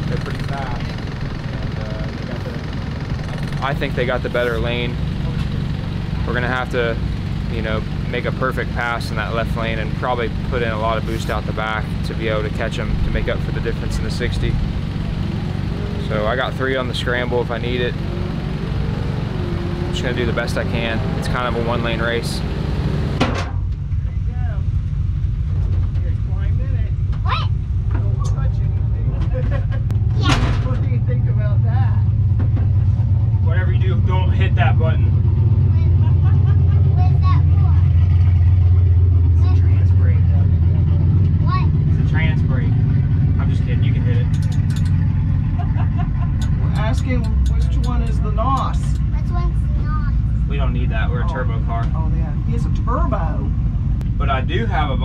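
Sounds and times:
indistinct voices talking: 0.0 - 23.1
vehicle engine idling: 0.0 - 55.0.

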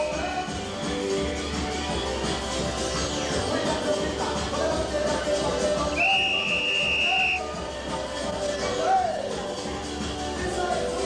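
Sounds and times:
happy hardcore rave music: 0.0 - 11.0
high whistle tone: 6.0 - 7.5.

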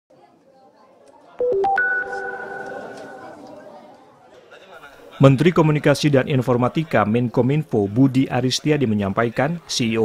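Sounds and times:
electronic beeping jingle: 1.4 - 3.4.

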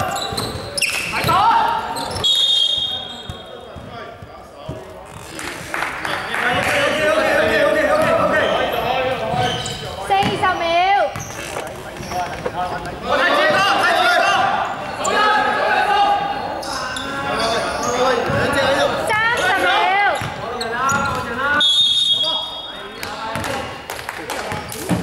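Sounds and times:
basketball bouncing on wooden court: 3.3 - 4.9, 9.3 - 10.5, 23.3 - 23.6.

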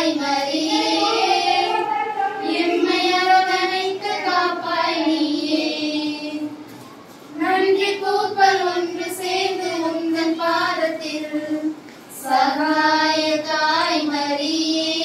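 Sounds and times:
women singing in unison: 0.0 - 6.7, 7.3 - 15.0.

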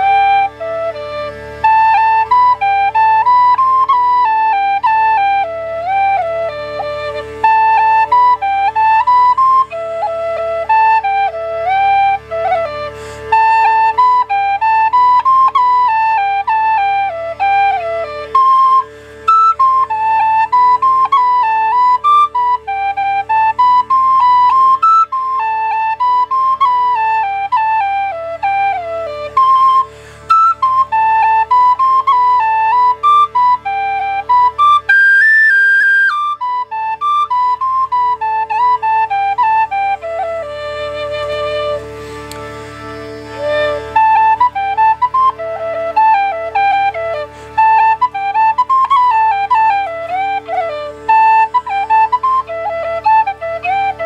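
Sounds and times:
tin whistle melody: 0.0 - 54.0.

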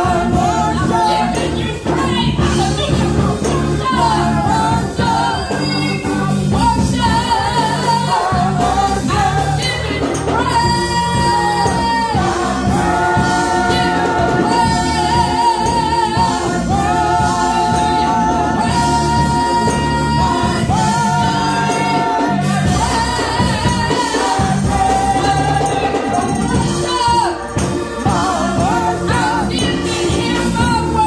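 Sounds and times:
women singing with vibrato: 0.0 - 31.0.

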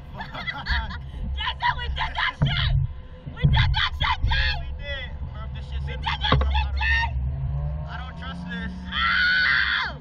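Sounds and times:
people laughing and exclaiming: 0.2 - 2.7.

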